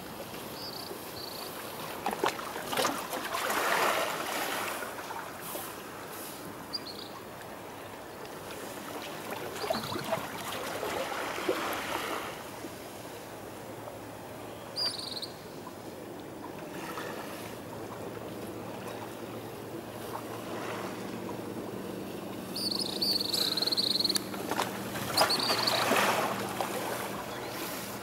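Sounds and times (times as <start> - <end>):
sea water lapping at shore: 0.1 - 14.2, 15.5 - 28.0.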